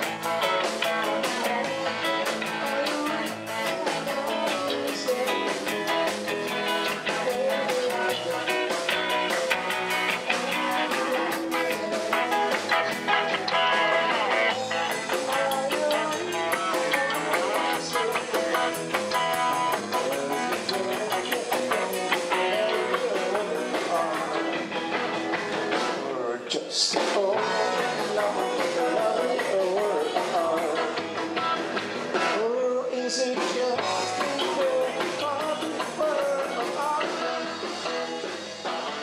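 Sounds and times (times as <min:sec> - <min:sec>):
electric bass: 0:00.0 - 0:26.4, 0:27.3 - 0:39.0
drum kit with cymbal beat: 0:00.0 - 0:39.0
electric guitar: 0:00.0 - 0:39.0.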